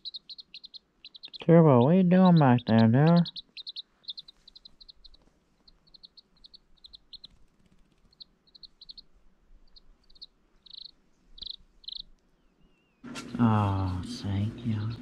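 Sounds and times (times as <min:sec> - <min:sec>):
chick peeping: 0:00.0 - 0:12.2, 0:13.0 - 0:15.0.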